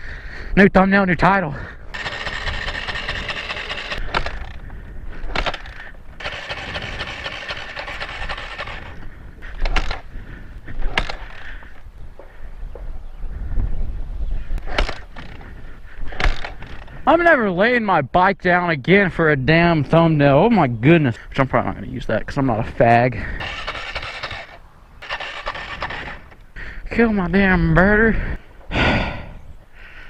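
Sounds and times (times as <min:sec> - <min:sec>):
dirt bike engine running: 0:01.3 - 0:12.3, 0:23.1 - 0:26.4
knocks and scrapes of bike: 0:02.0 - 0:10.1, 0:10.7 - 0:11.8, 0:14.6 - 0:17.0, 0:23.4 - 0:26.4.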